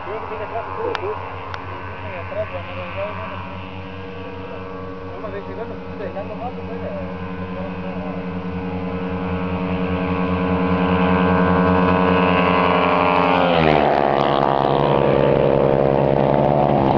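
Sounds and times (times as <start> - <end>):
motorcycle passing at full throttle: 0.0 - 16.9.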